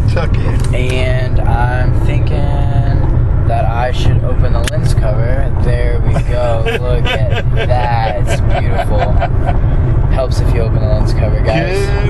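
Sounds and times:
car road rumble: 0.0 - 12.0
person talking: 0.0 - 12.0.

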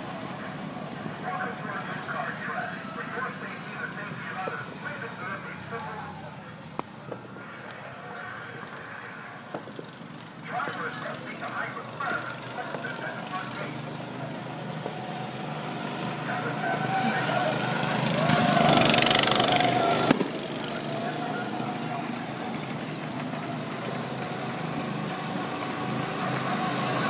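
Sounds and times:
go-kart engines running: 0.0 - 27.0.

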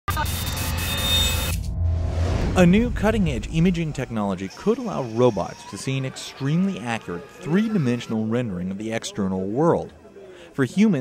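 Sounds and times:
steady low hum: 1.5 - 4.4.

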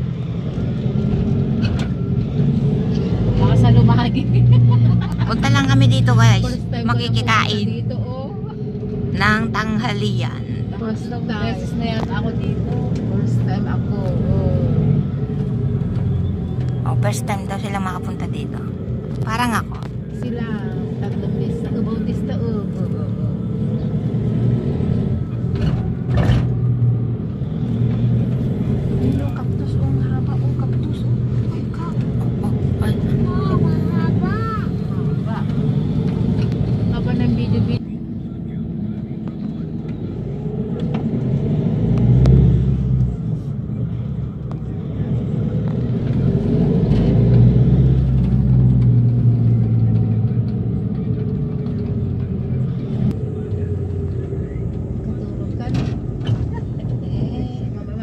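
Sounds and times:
vehicle engine running: 0.0 - 58.0.

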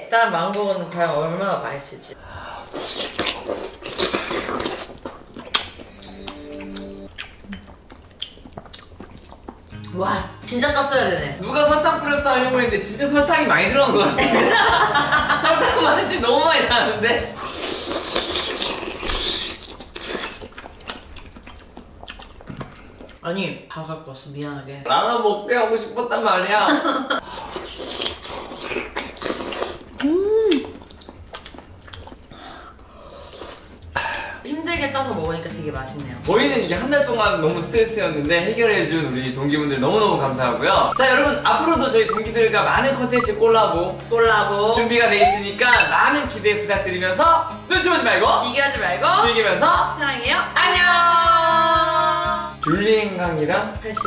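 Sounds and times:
wet slurping and sucking: 2.5 - 9.8, 17.4 - 23.2, 27.2 - 33.8, 45.1 - 45.9
chewing: 2.7 - 10.0, 17.5 - 23.2, 27.2 - 33.9
person humming mmm: 4.0 - 7.8, 30.0 - 30.8, 45.1 - 45.8.

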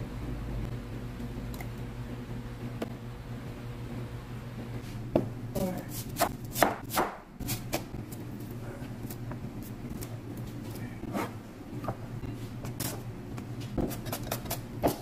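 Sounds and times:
cleaver chopping: 6.2 - 7.8.

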